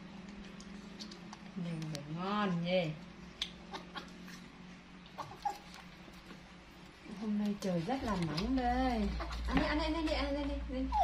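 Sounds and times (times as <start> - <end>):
mouth clicks and smacks: 3.3 - 5.9.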